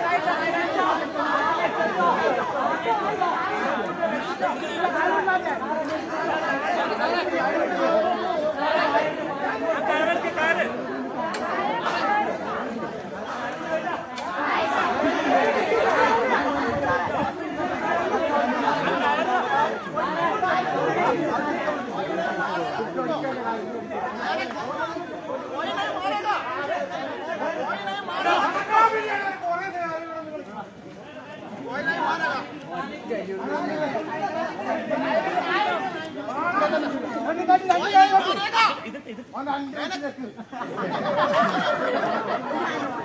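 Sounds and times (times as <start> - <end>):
crowd hubbub of voices: 0.0 - 43.0.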